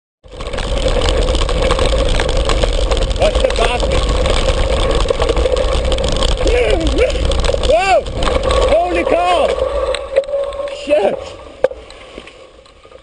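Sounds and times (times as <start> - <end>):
deep rumble: 0.2 - 13.0
wind buffeting microphone: 0.4 - 11.6.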